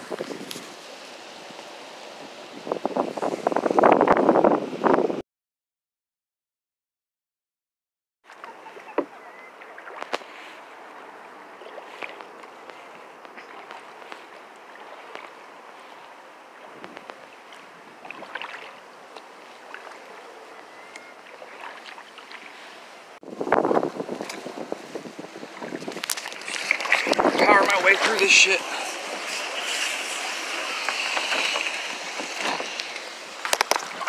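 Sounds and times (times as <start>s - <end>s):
reeds scraping kayak hull: 0.0s - 4.0s, 8.3s - 34.0s
water washing against kayak: 8.2s - 34.0s
small knocks and splashes: 8.3s - 10.5s, 11.6s - 20.1s, 21.2s - 22.6s, 25.6s - 27.5s, 30.9s - 34.0s.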